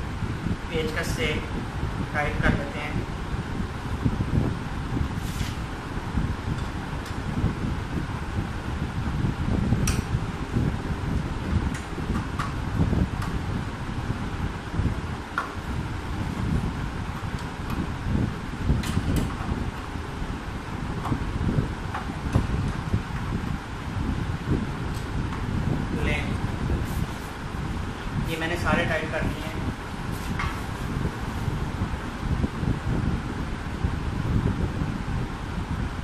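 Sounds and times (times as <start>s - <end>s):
low rumbling background noise: 0.0s - 36.0s.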